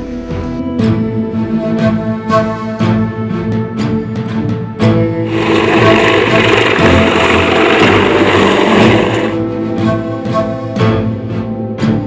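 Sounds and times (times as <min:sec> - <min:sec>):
background music: 0:00.0 - 0:12.0
hovercraft engines rushing: 0:05.3 - 0:09.4.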